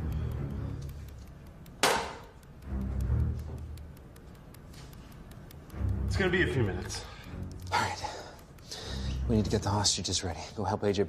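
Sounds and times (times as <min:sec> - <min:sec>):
low film background music: 0:00.0 - 0:11.0.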